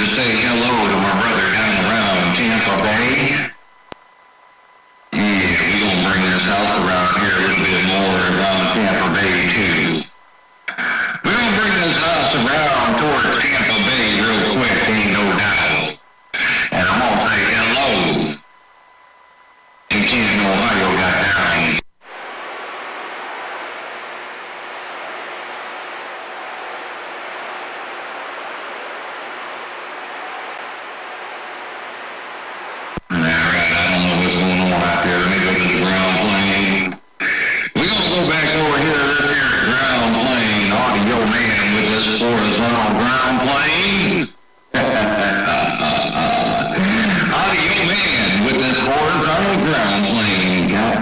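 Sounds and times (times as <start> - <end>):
man talking: 0.0 - 3.5, 5.2 - 10.1, 11.0 - 18.4, 19.9 - 21.9, 33.0 - 37.0, 37.6 - 51.0
man talking over radio: 0.0 - 3.6, 5.2 - 10.1, 10.7 - 18.4, 19.9 - 21.9, 33.0 - 51.0
radio static burst: 0.0 - 4.0, 5.1 - 18.4, 19.9 - 51.0
radio click: 3.8 - 4.1, 10.6 - 11.2, 21.8 - 33.1.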